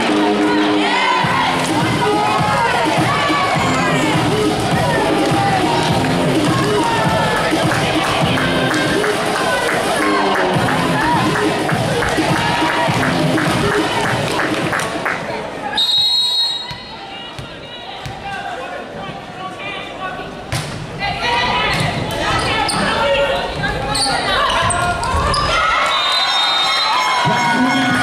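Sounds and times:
crowd cheering: 0.0 - 18.8, 21.0 - 28.0
players calling and shouting: 0.0 - 28.0
referee's whistle: 15.8 - 17.8, 25.8 - 27.1.

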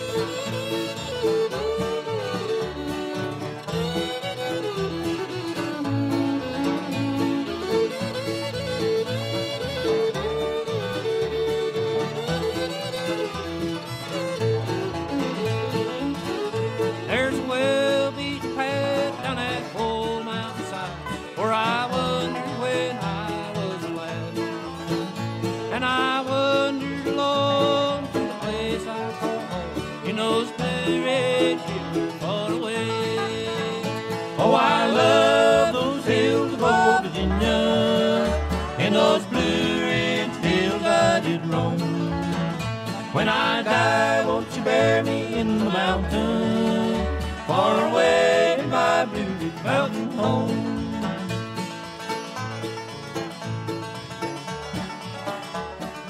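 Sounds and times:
banjo: 0.0 - 56.0
bending fiddle or dobro lines: 0.0 - 56.0
guitar: 0.0 - 56.0
string bass: 0.0 - 56.0.

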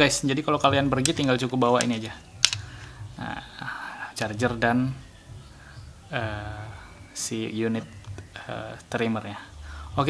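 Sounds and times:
sharp plastic click: 1.0 - 2.7.

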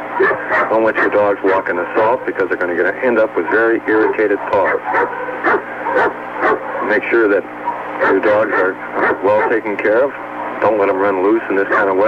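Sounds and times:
dog yipping and whining: 0.2 - 1.6, 3.5 - 6.9, 7.6 - 9.6.

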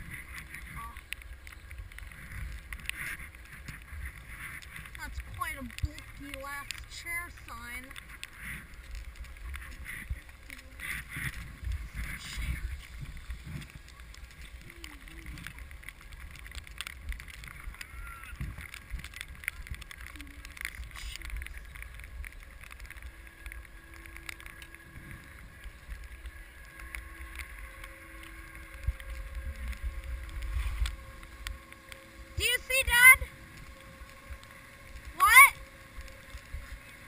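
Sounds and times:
low wind rumble on microphone: 0.0 - 37.0
skis sliding over snow: 0.0 - 37.0
high-pitched voice shouting: 32.4 - 33.2, 35.2 - 35.6.

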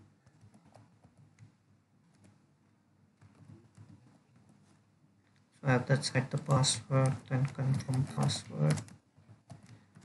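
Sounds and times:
faint keyboard typing: 0.0 - 10.0.

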